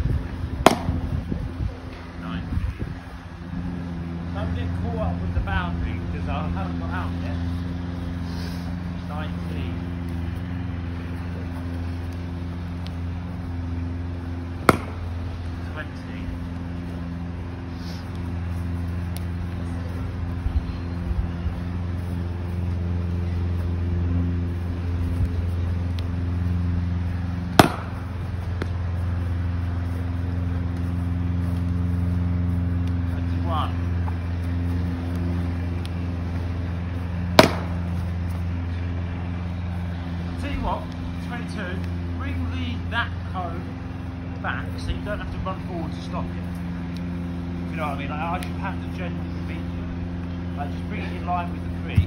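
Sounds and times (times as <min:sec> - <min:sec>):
steady low hum: 0:00.0 - 0:52.0
cricket bat striking ball: 0:00.6 - 0:01.0, 0:14.6 - 0:15.1, 0:27.5 - 0:28.1, 0:37.3 - 0:37.8.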